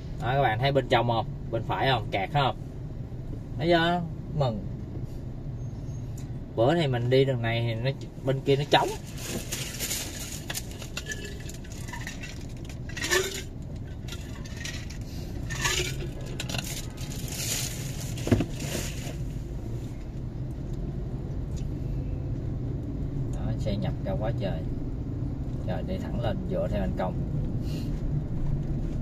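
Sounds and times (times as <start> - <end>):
car engine idling: 4.8 - 20.5
clinks and scrapes: 9.0 - 19.2.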